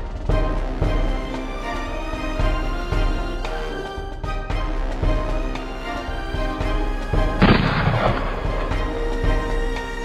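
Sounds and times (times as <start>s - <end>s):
background music: 0.0s - 10.0s
sudden blast-like boom: 7.4s - 8.6s.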